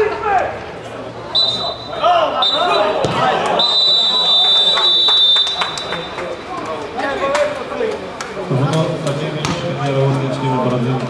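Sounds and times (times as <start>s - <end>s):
voices calling out: 0.0s - 8.5s
referee's whistle blasts: 1.3s - 6.2s.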